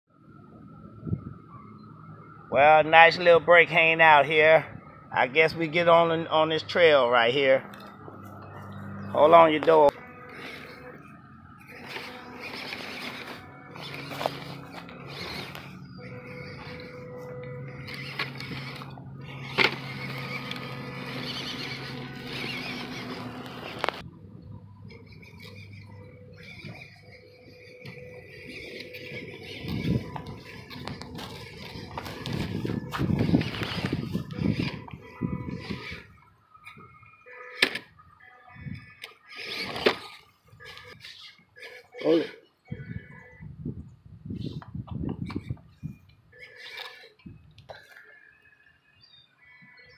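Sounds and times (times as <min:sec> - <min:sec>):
dry grass crackling under tyres: 0:05.2 - 0:43.5, 0:45.2 - 0:48.4
small electric motor running: 0:08.6 - 0:24.1, 0:24.8 - 0:37.6, 0:38.5 - 0:43.3, 0:45.4 - 0:47.4.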